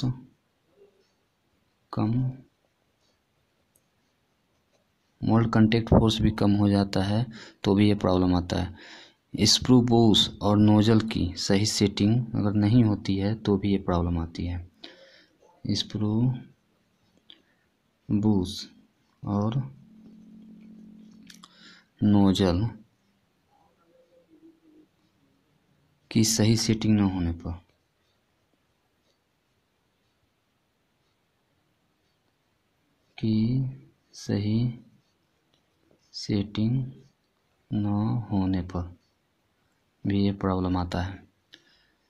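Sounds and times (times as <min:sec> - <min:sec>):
man speaking: 0:00.0 - 0:01.0, 0:01.9 - 0:02.5, 0:05.2 - 0:14.8, 0:15.4 - 0:16.6, 0:18.1 - 0:22.9, 0:26.1 - 0:27.7, 0:33.2 - 0:34.9, 0:36.1 - 0:37.1, 0:37.7 - 0:39.0, 0:40.0 - 0:41.3.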